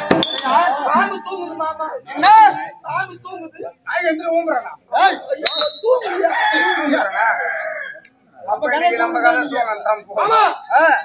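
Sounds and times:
voices: 0.0 - 11.0
rooster crowing: 5.9 - 8.1.

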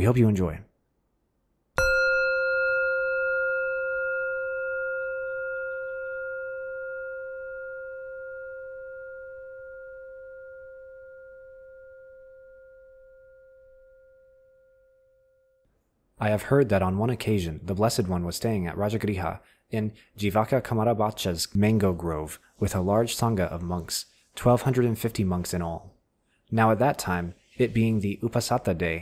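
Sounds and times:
singing bowl ringing: 1.8 - 15.6.

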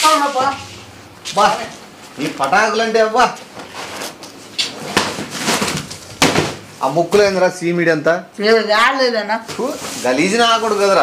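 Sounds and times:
plastic mat rustling: 0.1 - 7.3, 9.4 - 11.0.

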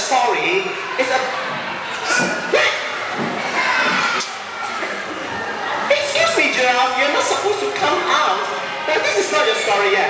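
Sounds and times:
children shouting and calling out: 1.4 - 6.1.

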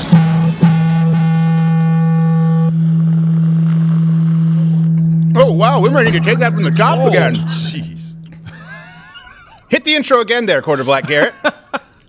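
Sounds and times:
low electronic tone: 0.0 - 9.9.

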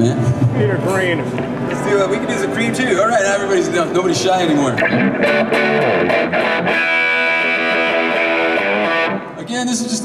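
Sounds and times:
overdriven electric guitar: 4.7 - 9.4.

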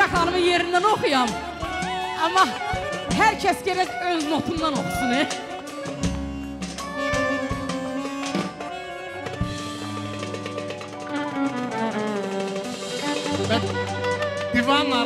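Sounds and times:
live band playing: 0.0 - 15.0
violin long held notes: 0.0 - 15.0.

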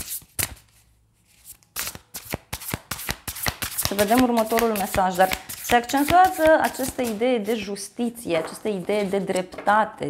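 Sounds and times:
cards slapping: 0.0 - 0.8, 1.5 - 7.2
cards being shuffled: 0.0 - 7.7.

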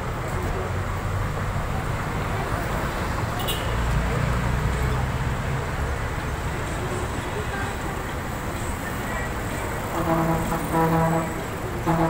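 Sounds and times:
street traffic noise: 0.0 - 12.0
vehicle horn honks: 9.9 - 12.0.

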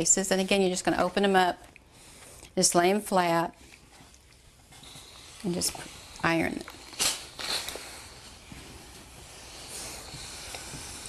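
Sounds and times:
soft steam hiss: 0.0 - 11.0
steam iron swishing: 3.2 - 11.0.

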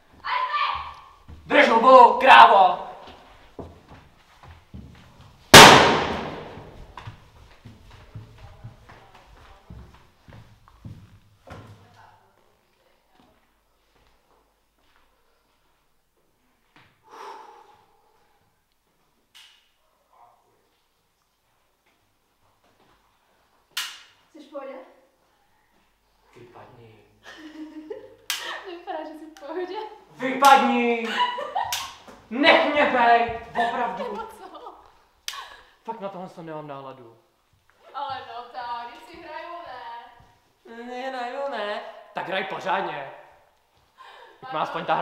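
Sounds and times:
faint footsteps: 0.0 - 1.6, 2.9 - 17.0, 37.3 - 40.7, 43.4 - 44.3
loud echoing bang: 5.6 - 6.8.

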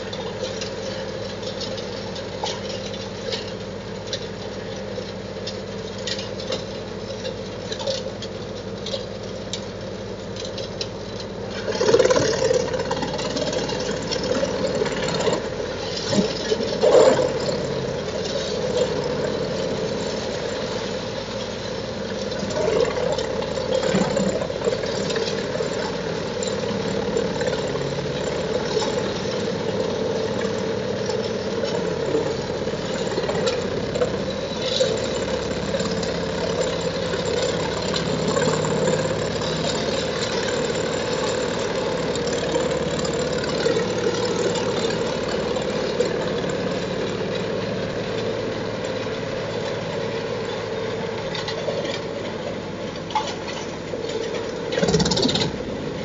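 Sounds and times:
wood cracking in chipper: 0.0 - 55.8
wood chipper running under load: 0.0 - 56.0.

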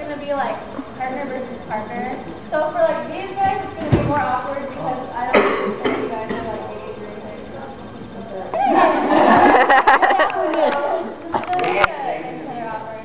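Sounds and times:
crowd talking in a hall: 0.0 - 13.0.

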